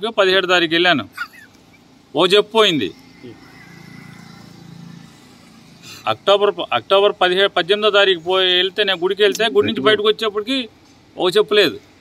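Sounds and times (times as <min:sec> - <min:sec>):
vehicle engine humming: 0:00.3 - 0:12.0.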